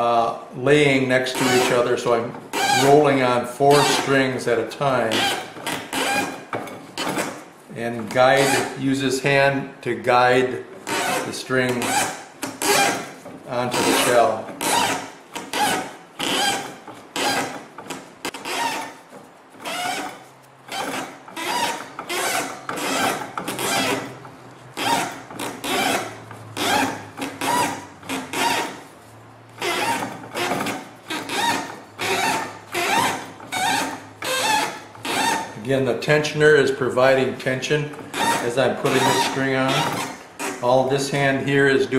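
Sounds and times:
string rasping on paper casing: 0:01.1 - 0:09.2, 0:10.7 - 0:41.4.

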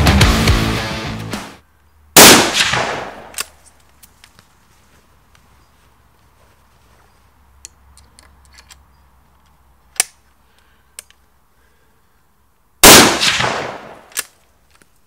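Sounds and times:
gunshot bang: 0:02.2 - 0:03.3, 0:12.8 - 0:14.0
rifle handling clicks: 0:03.2 - 0:04.4, 0:07.6 - 0:11.2, 0:13.9 - 0:15.0.

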